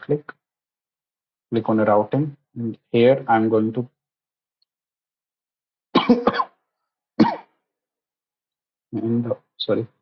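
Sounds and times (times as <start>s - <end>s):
man coughing: 6.0s - 6.5s, 7.2s - 7.5s.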